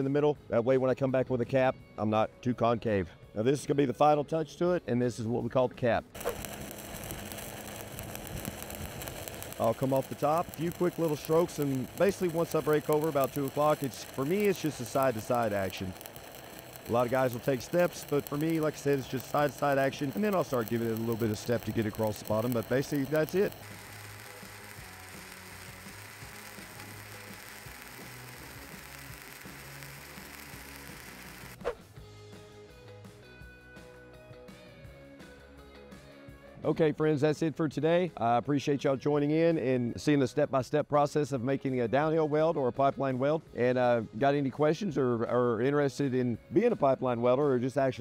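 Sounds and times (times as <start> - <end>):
quiet background music: 0.0 - 48.0
welding arc crackling: 6.2 - 31.8.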